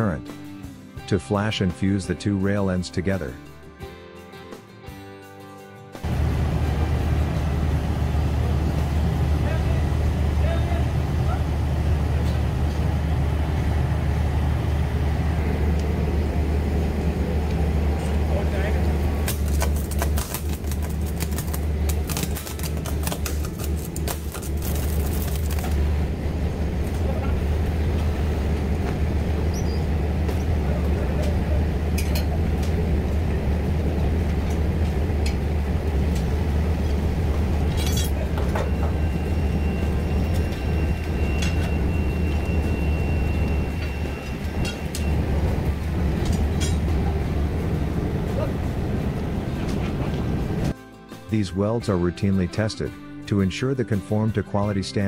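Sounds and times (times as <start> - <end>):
welding machine humming: 11.1 - 49.4
steady high tone: 36.4 - 50.7.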